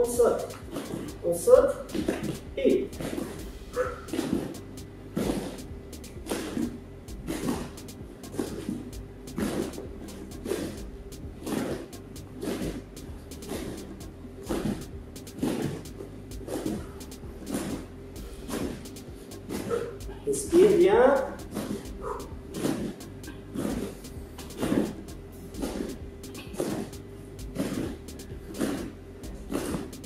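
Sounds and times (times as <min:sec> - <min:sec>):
bare feet thudding on foam mats: 0:00.0 - 0:30.0.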